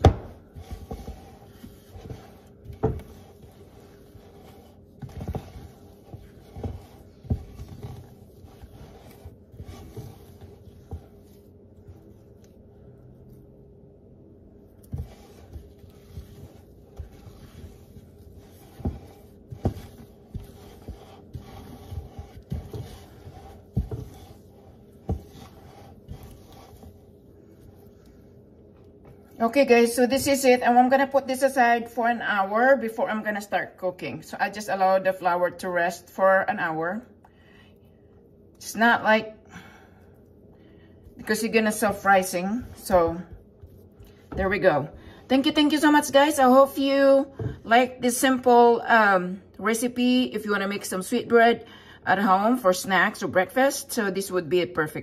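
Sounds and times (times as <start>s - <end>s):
hand kneading wet dough in bowl: 0.0s - 35.8s, 40.9s - 51.2s.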